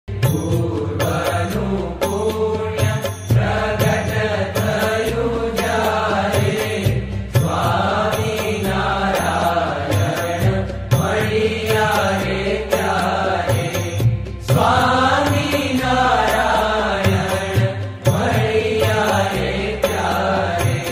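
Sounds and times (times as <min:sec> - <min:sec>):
devotional chant singing: 0:00.1 - 0:20.9.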